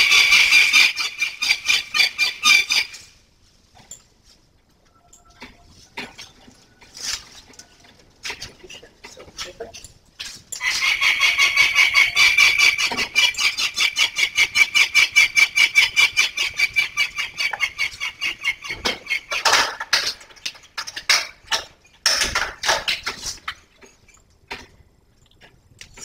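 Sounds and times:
falcon calling harshly: 10.6s - 15.3s.

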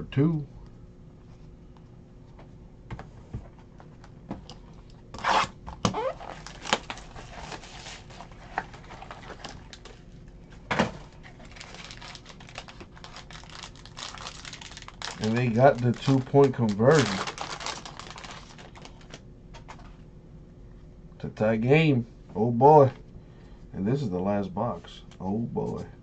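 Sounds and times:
foil tearing: 5.2s - 10.0s, 11.3s - 19.2s
foil pack crinkling: 5.9s - 10.1s, 11.0s - 19.2s.

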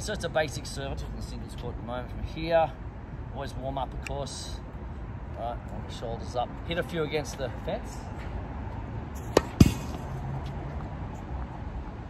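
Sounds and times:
ball hitting fence: 9.2s - 10.2s
tennis racket hitting ball: 9.2s - 10.2s.

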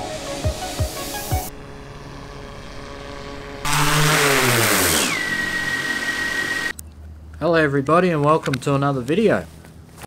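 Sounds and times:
drone propellers whining: 0.0s - 6.8s.

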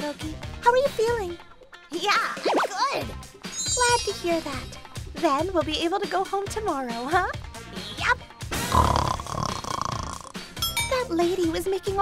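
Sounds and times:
background music: 0.0s - 12.0s
loud rough snore: 8.6s - 10.5s.

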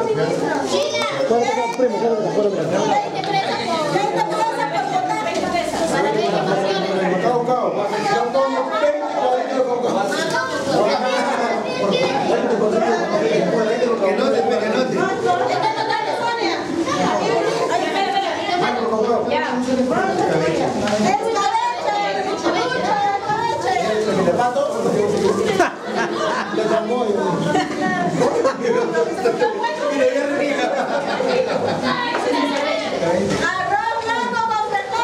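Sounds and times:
overlapping chatter: 0.0s - 35.0s
overlapping voices of a group: 25.2s - 35.0s.

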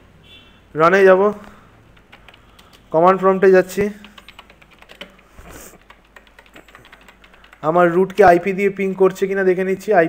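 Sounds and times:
typing on computer keyboard: 1.9s - 2.9s, 3.6s - 9.5s.

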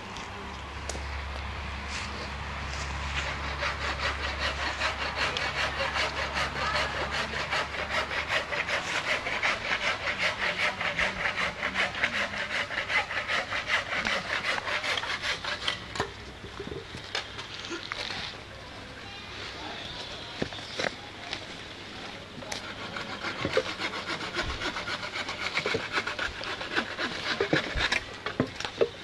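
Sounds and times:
rhythmic rasping: 3.1s - 15.8s, 22.4s - 28.0s.

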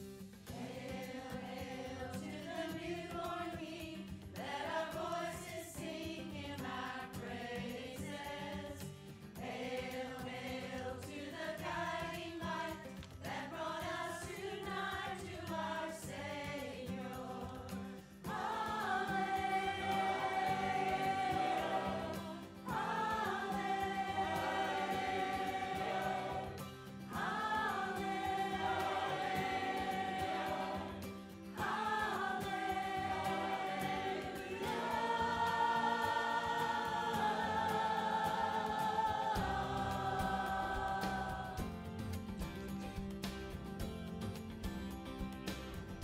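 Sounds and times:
mixed choir singing: 0.5s - 42.1s.

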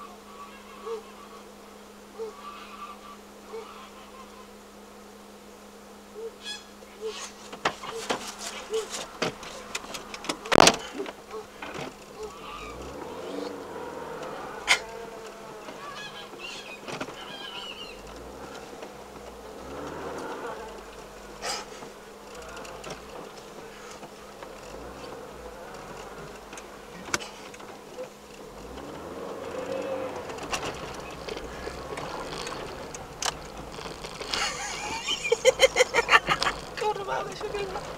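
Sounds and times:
car engine accelerating: 0.0s - 37.9s
steady buzzing hum: 0.0s - 37.9s.

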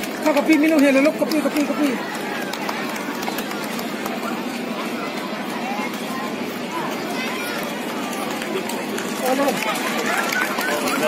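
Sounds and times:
outdoor crowd chatter: 0.0s - 11.0s.

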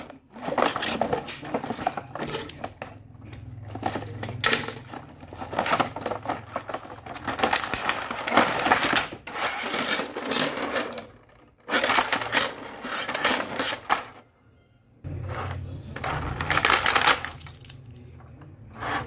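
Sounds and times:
toy vehicles clicking: 0.0s - 14.2s
plastic tray crackling: 3.7s - 14.1s, 16.0s - 17.8s.

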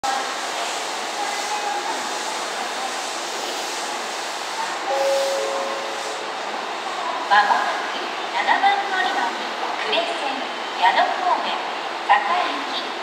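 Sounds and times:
electric train running hiss: 0.1s - 7.0s
short steady tone: 4.9s - 6.3s.

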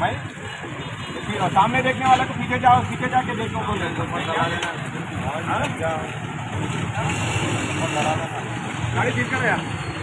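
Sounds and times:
street traffic rumbling: 0.0s - 10.0s.

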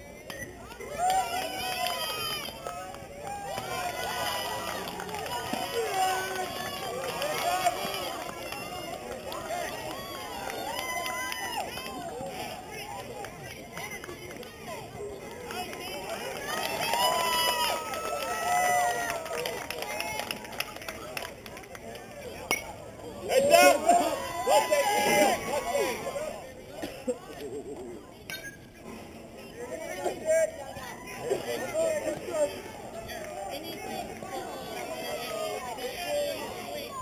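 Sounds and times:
voices calling out and shouting: 0.0s - 37.0s.

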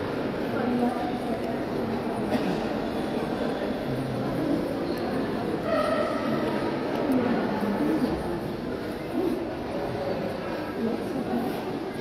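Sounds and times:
busy hall background noise: 0.0s - 12.0s
faint voices: 0.0s - 12.0s.

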